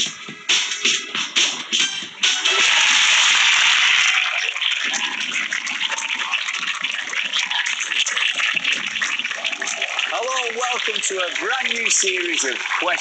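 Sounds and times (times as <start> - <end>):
studio audience applauding: 1.3 - 13.0.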